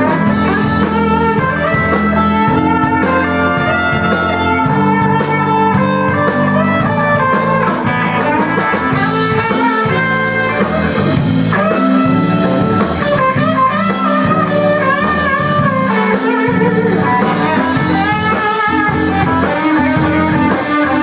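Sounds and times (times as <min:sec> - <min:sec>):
drum kit: 0:00.0 - 0:21.0
electric guitar lead with bent notes: 0:00.0 - 0:21.0.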